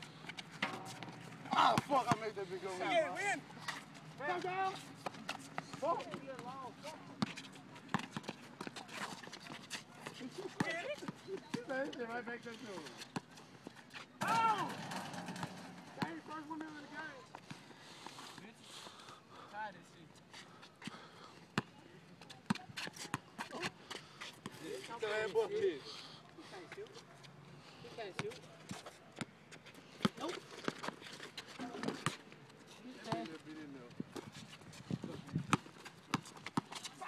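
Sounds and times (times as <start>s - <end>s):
players shouting: 14.2s - 15.1s.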